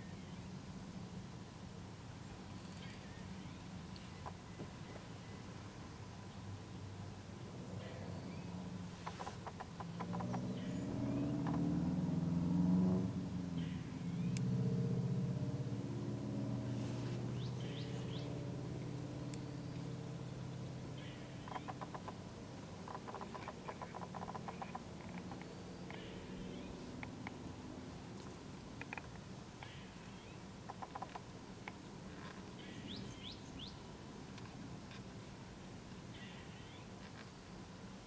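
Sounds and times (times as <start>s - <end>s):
vehicle passing hum: 5.3s - 34.2s.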